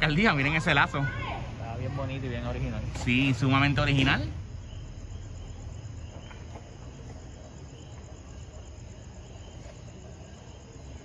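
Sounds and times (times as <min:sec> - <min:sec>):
night insects trilling: 0:00.0 - 0:11.0.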